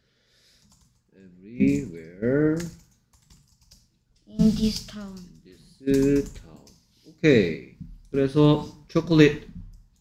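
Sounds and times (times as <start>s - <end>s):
computer keyboard typing: 0.6s - 1.0s, 1.6s - 6.8s.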